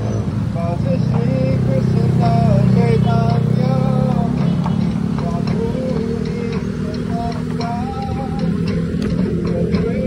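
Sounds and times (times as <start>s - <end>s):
street traffic noise: 0.0s - 10.0s
person singing: 0.6s - 10.0s.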